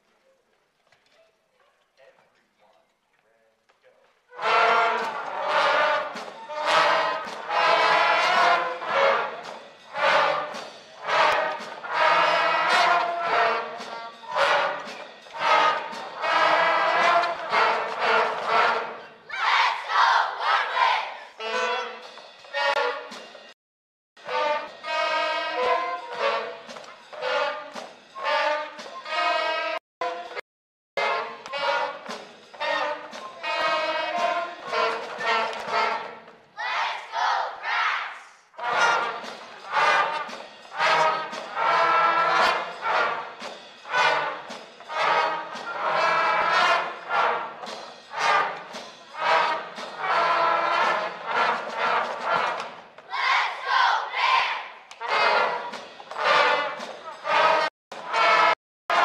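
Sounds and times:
concert band playing lively tune: 4.4s - 19.0s, 24.2s - 30.4s, 31.0s - 36.2s, 38.6s - 52.8s, 55.0s - 59.0s.

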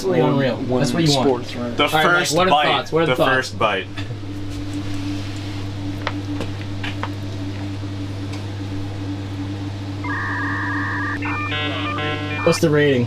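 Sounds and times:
low electric hum: 2.9s - 13.0s
two-tone electronic beep: 10.0s - 12.7s.

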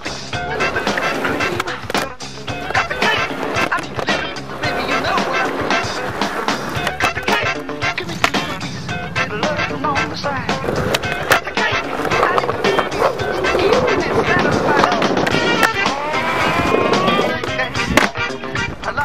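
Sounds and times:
skateboard popping and landing: 0.0s - 19.0s
skateboard wheels rolling on concrete: 0.0s - 19.0s
song with vocals: 0.0s - 19.0s.

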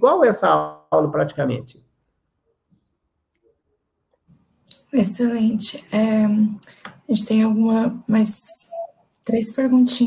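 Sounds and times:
woman speaking: 4.7s - 10.0s.

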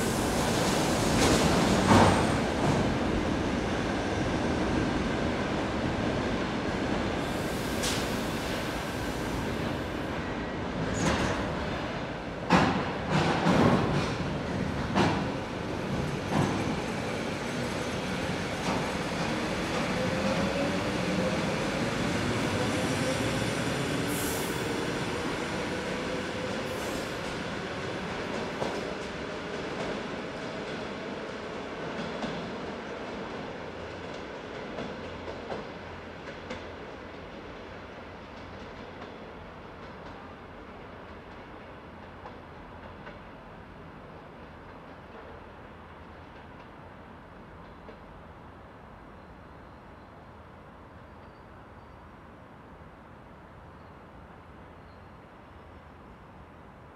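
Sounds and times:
short high hisses: 7.3s - 9.4s.

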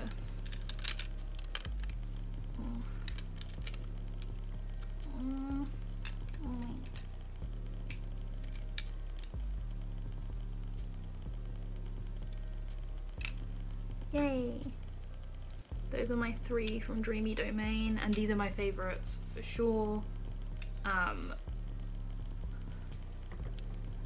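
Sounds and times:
quiet background music: 0.0s - 24.0s.

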